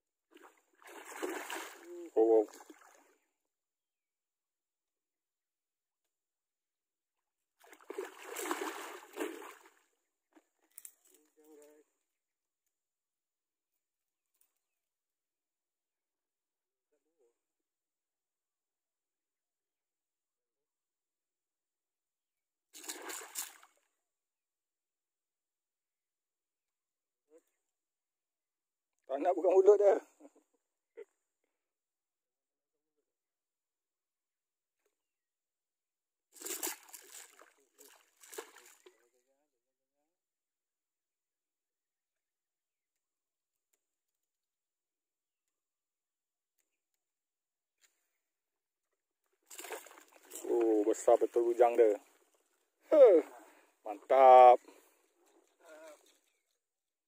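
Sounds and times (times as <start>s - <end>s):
fish thrashing in water: 0.4s - 1.9s, 7.6s - 9.8s, 36.4s - 38.9s, 49.4s - 50.5s.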